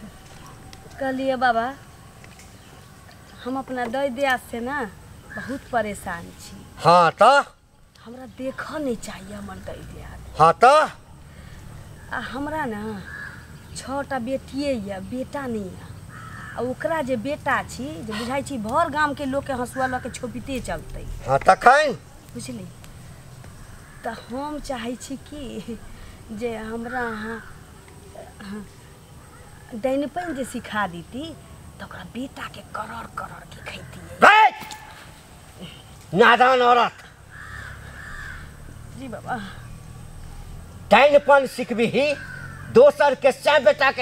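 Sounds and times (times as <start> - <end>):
crow cawing: 5.2 - 5.7, 12.8 - 13.8, 16.1 - 16.9, 19.6 - 20.4, 23.1 - 24.6, 25.8 - 27.9, 29.2 - 30.8, 37.0 - 39.7, 41.8 - 43.2.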